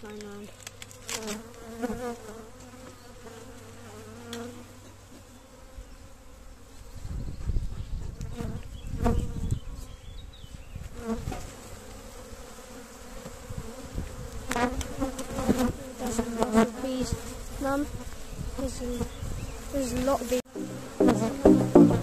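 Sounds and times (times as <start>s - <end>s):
honeybees buzzing: 0.0s - 7.1s, 8.0s - 22.0s.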